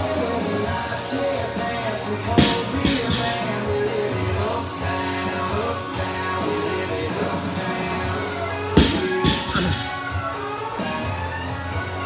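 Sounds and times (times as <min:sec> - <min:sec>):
rock music with guitar: 0:00.0 - 0:12.0
barbell dropped on rubber floor: 0:02.4 - 0:03.6, 0:08.8 - 0:10.1.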